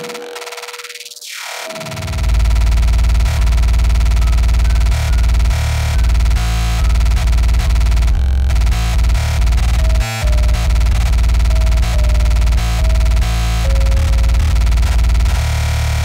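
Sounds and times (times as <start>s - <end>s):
fast buzzing kick drums: 2.0s - 16.0s.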